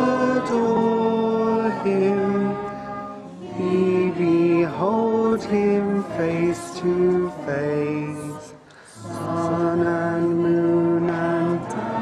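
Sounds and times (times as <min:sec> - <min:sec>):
crowd singing a hymn: 0:00.0 - 0:12.0.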